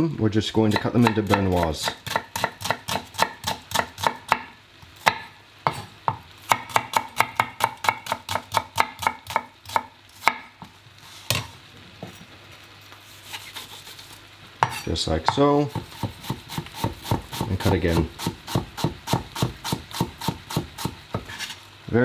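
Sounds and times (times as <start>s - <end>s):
knife chopping on plastic board: 0.7s - 4.4s, 14.6s - 17.5s.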